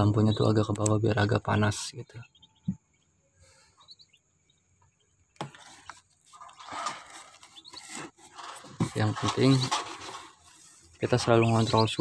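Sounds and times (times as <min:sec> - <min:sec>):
ducklings peeping: 0:00.0 - 0:12.0
click: 0:00.7 - 0:01.0
rustling: 0:05.4 - 0:12.0.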